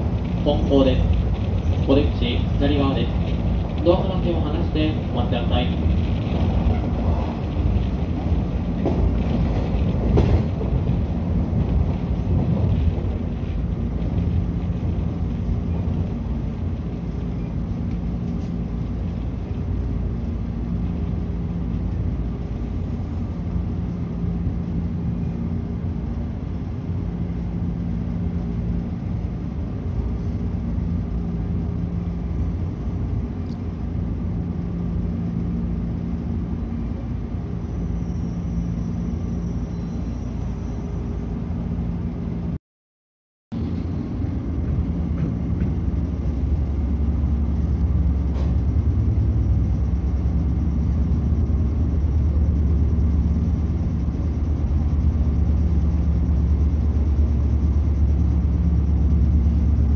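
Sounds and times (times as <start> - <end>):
train wheels rumbling on rails: 0.0 - 42.6, 43.5 - 59.9
low hum: 43.5 - 59.9.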